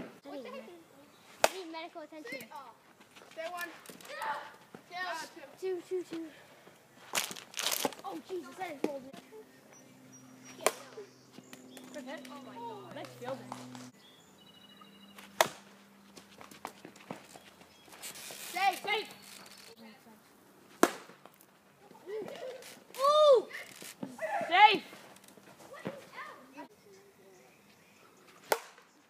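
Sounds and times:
children shouting: 0:23.0 - 0:23.6.

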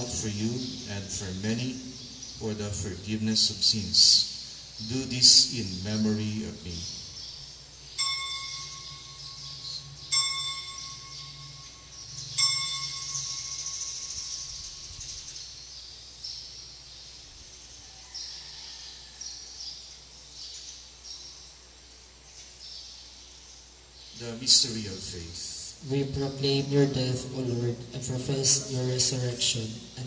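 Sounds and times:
altar bell ringing: 0:08.0 - 0:14.8.

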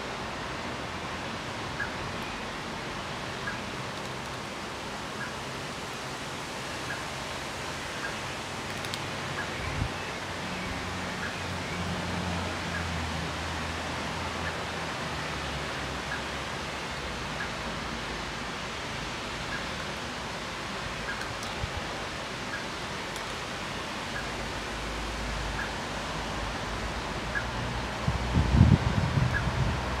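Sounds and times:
outdoor background hiss: 0:00.0 - 0:30.0.

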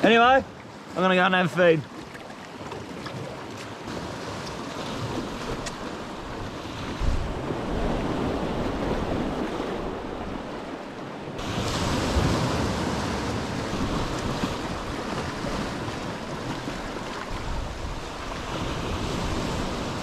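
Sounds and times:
waves breaking on rocks: 0:00.0 - 0:20.0
wind buffeting microphone: 0:04.0 - 0:20.0.

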